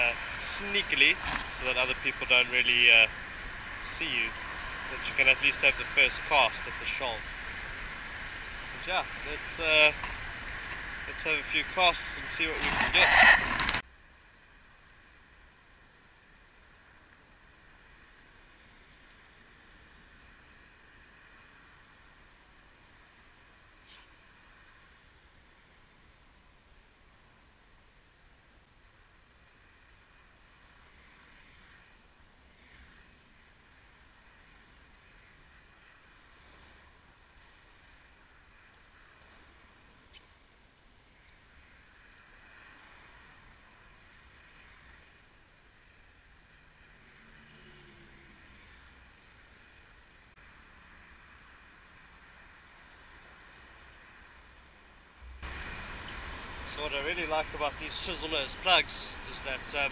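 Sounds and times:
faint outdoor hiss: 0.0s - 59.9s.

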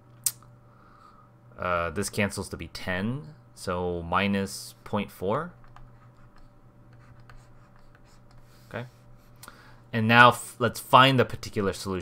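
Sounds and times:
faint low hum: 0.0s - 12.0s
stylus scratching on tablet: 5.6s - 9.1s.

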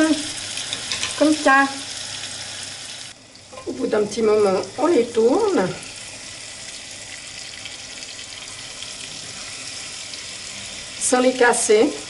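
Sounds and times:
bananas sizzling in frying pan: 0.0s - 12.0s.

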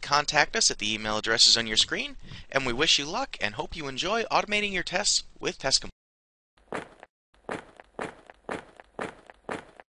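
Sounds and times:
footstep thuds: 6.7s - 9.8s.

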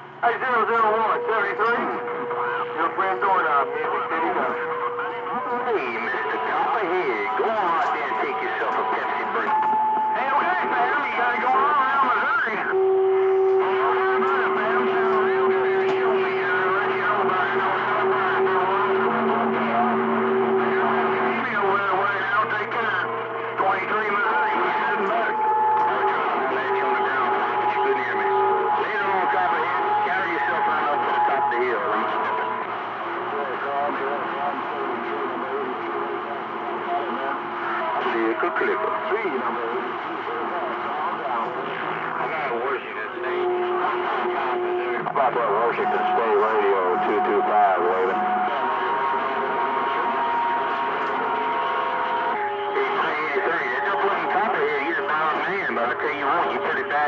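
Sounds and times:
garbled overlapping radio voices: 0.0s - 57.0s.

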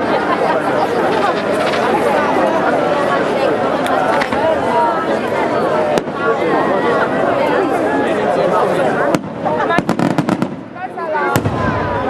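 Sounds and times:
people talking: 0.0s - 12.0s
fireworks cracks: 0.8s - 2.6s, 9.1s - 12.0s
fireworks bangs: 9.0s - 12.0s.

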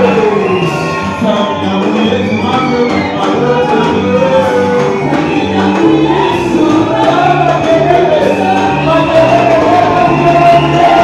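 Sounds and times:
bass line: 0.0s - 11.0s
choir singing gospel: 0.0s - 11.0s
instrumental accompaniment: 0.0s - 11.0s.

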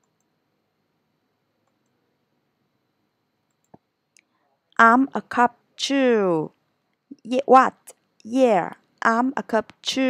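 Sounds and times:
very faint clicks: 3.4s - 4.3s.

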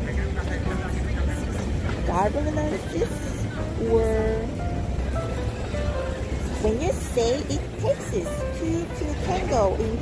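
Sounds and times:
faint voices: 0.0s - 10.0s
low traffic rumble: 0.0s - 10.0s.

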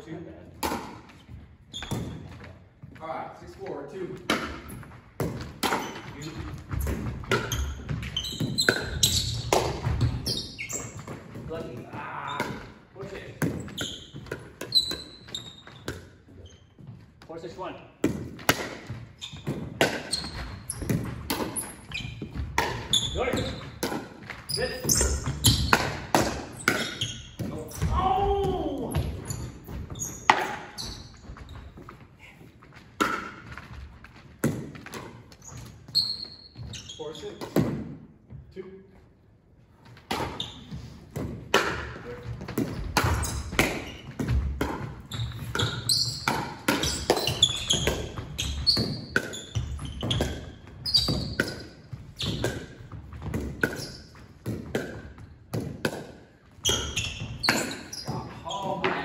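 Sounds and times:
paddles hitting plastic ball: 4.2s - 10.4s, 18.0s - 32.0s, 32.7s - 35.7s, 41.1s - 59.0s
ball bouncing on hardwood floor: 4.2s - 12.6s, 18.0s - 32.0s, 40.1s - 59.0s.

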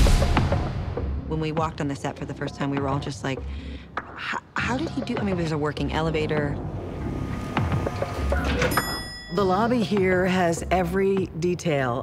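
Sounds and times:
elevator arrival chime: 8.2s - 9.6s.

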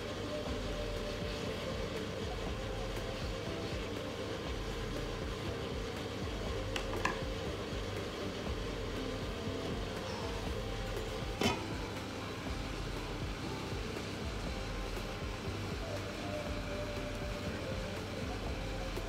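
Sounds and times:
water simmering in a hotpot: 0.0s - 19.0s.

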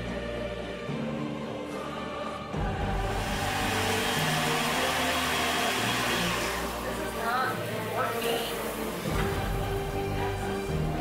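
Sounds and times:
background music: 0.0s - 11.0s
rushing kitchen noise: 2.8s - 11.0s.

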